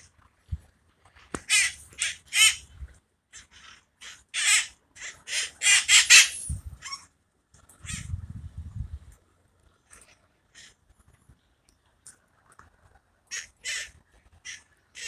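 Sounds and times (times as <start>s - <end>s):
parakeets screeching: 1.4s - 2.6s, 3.4s - 7.0s, 13.3s - 15.0s.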